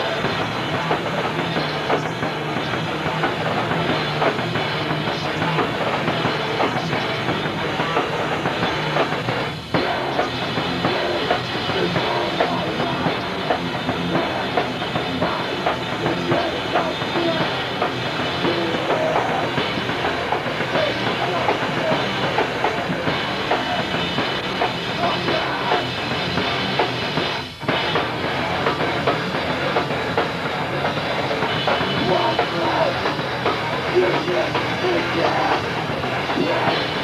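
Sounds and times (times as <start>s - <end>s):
punk band playing live: 0.0s - 37.0s.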